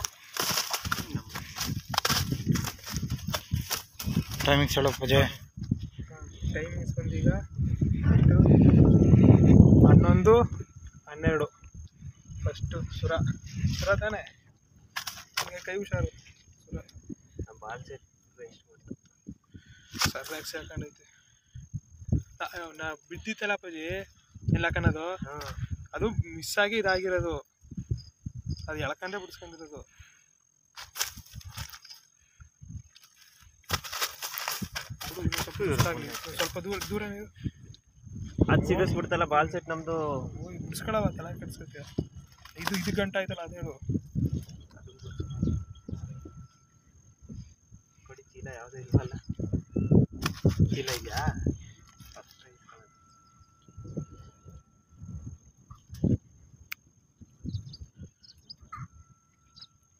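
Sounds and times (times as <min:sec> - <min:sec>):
fish thumping on grass: 0:00.0 - 0:04.4, 0:33.7 - 0:36.5
dry grass and plastic crackling: 0:00.0 - 0:07.8, 0:13.2 - 0:18.2, 0:18.9 - 0:21.0, 0:30.6 - 0:38.6, 0:40.6 - 0:46.6, 0:48.4 - 0:56.9.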